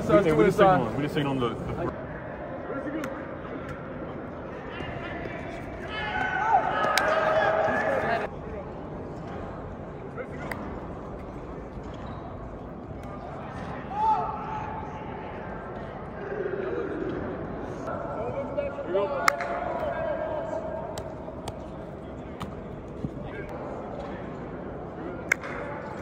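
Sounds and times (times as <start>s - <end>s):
players calling and shouting: 0.0s - 8.3s, 13.0s - 24.0s
murmur of chatter: 0.0s - 26.0s.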